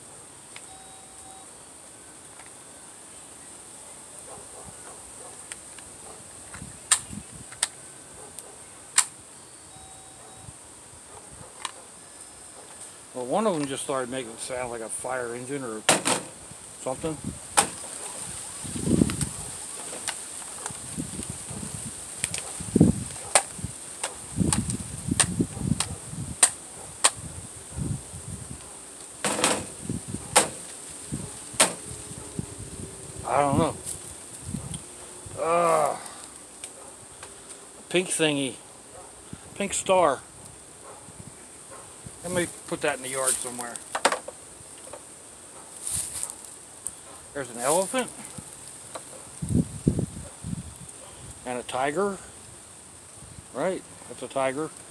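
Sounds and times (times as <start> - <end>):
high insect drone: 0.0 - 39.5.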